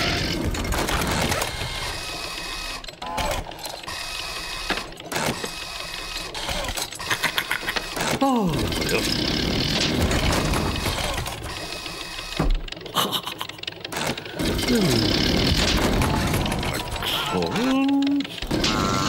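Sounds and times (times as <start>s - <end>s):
mechanical clicking and whirring: 0.0s - 19.0s.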